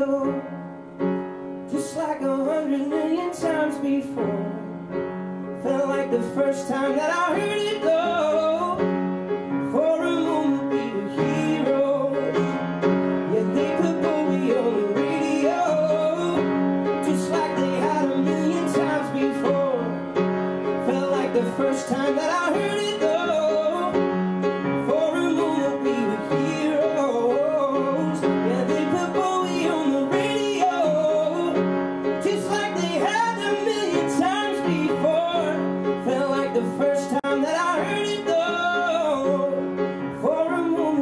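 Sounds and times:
upright piano chords: 0.0s - 41.0s.

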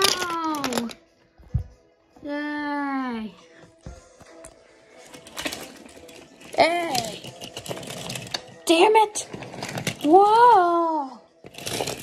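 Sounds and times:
toy trains clattering on wooden track: 0.0s - 1.0s, 5.0s - 10.2s, 11.4s - 12.0s.

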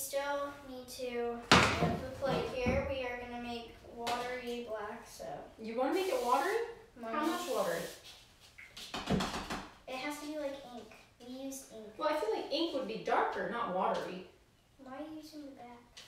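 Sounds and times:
woman and girl talking: 0.0s - 8.0s, 9.8s - 15.9s.

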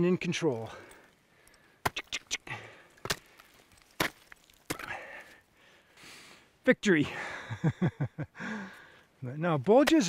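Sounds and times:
ice tools chopping ice: 3.0s - 5.1s.

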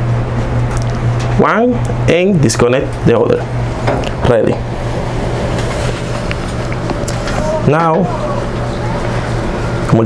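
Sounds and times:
low hum: 0.0s - 10.0s.

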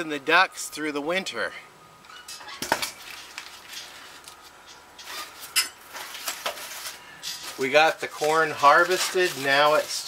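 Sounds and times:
corn husks rustling: 2.7s - 10.0s.

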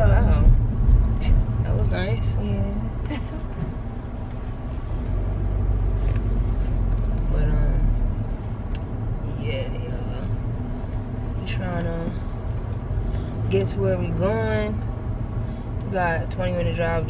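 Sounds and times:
car engine rumble: 0.0s - 17.0s
tyres on road: 0.0s - 17.0s.

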